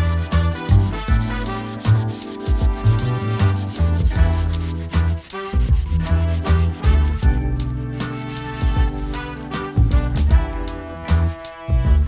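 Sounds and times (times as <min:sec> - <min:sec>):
hand saw cutting wood: 0:00.0 - 0:09.7
background music: 0:00.0 - 0:12.0.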